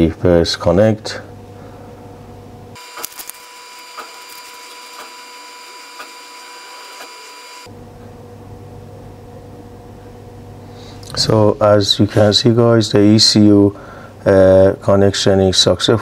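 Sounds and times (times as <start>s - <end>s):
high electronic whine: 2.8s - 7.8s.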